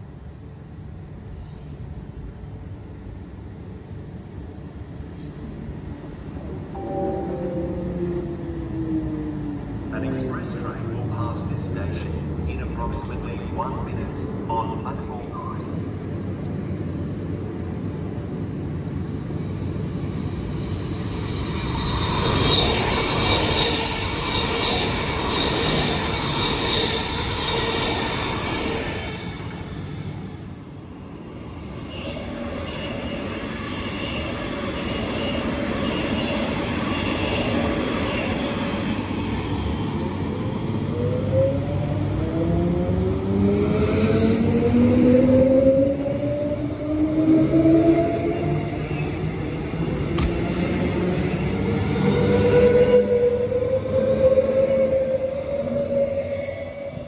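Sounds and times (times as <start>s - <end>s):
train equipment humming: 0.0s - 33.3s.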